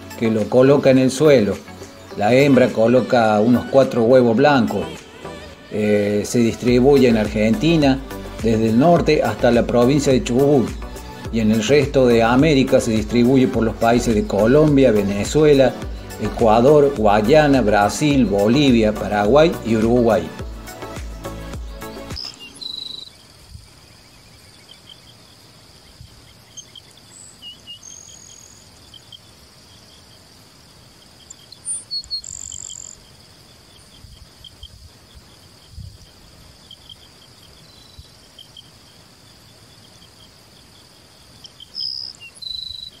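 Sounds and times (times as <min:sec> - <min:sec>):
sparrow singing: 0:00.0 - 0:30.1, 0:31.0 - 0:34.8, 0:36.7 - 0:38.7, 0:41.3 - 0:43.0
insect drone with ticking: 0:00.0 - 0:43.0.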